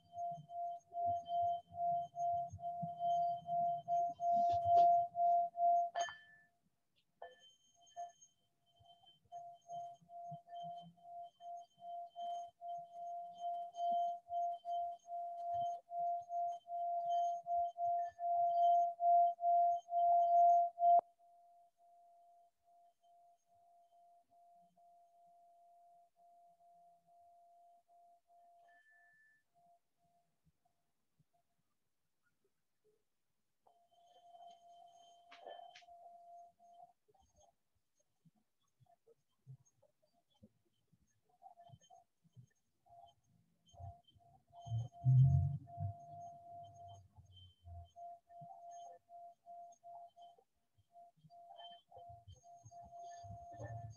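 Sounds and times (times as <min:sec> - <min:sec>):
pulsing ringing tone: 0:00.0 - 0:06.5, 0:07.2 - 0:21.1, 0:33.7 - 0:37.5, 0:43.0 - 0:53.9.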